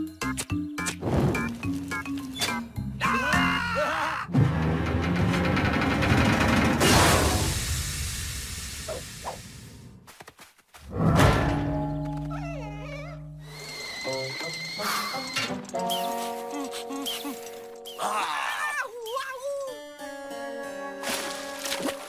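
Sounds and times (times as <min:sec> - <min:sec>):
music with long held chords: 0:19.8 - 0:22.0.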